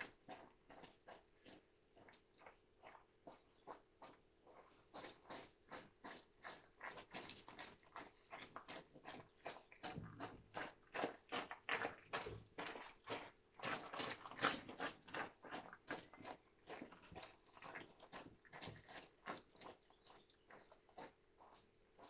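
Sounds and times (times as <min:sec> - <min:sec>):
dog trotting on gravel: 0:00.0 - 0:22.0
footsteps crunching on gravel: 0:00.0 - 0:22.0.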